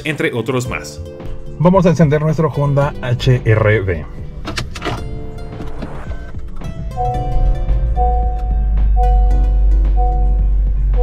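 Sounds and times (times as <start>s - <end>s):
car engine idling: 4.2s - 11.0s
car engine cranking: 4.3s - 10.8s.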